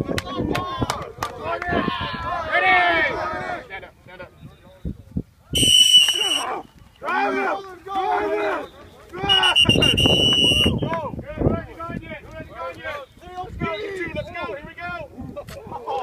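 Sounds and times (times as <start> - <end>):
shrill whistle blasts: 5.6 - 6.5, 9.2 - 10.9
players shouting: 5.6 - 11.1.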